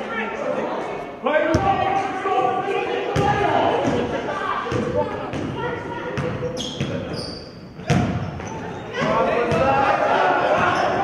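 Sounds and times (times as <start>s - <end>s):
voices calling out: 0.0s - 11.0s.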